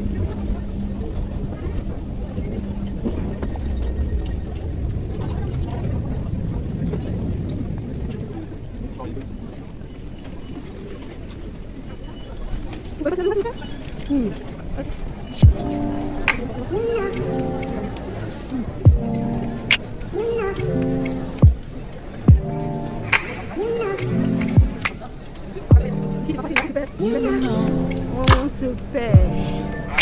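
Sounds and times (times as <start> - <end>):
low rumbling background noise: 0.0 - 30.0
indistinct voices: 13.1 - 30.0
steady hum: 15.4 - 25.1.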